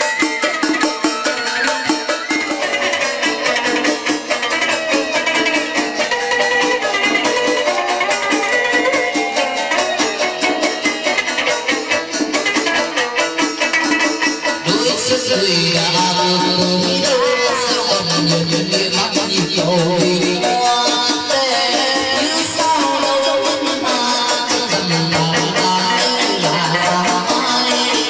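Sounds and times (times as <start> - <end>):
fast percussion beat: 0.0 - 28.0
plucked moon lute: 0.0 - 28.0.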